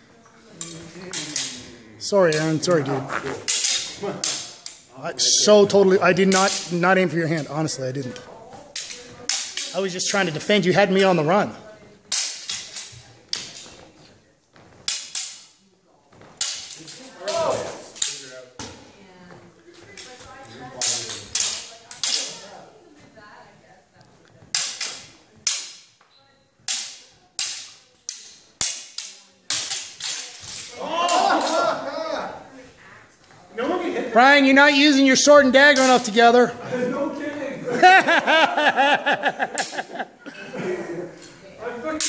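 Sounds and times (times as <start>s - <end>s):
steel swords clashing: 3.5s - 4.8s.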